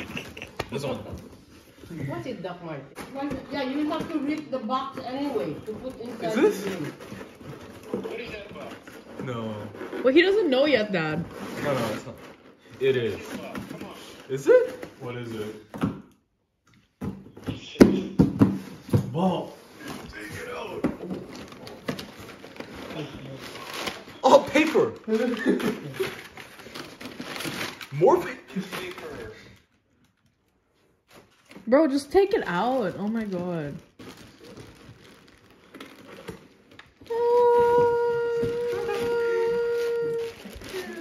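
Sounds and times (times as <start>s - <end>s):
tearing packing tape and cardboard: 5.1s - 15.5s, 19.8s - 29.6s, 32.5s - 41.0s.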